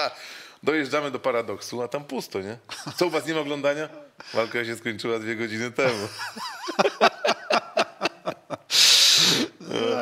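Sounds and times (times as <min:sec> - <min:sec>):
man laughing hard: 0:05.9 - 0:08.7.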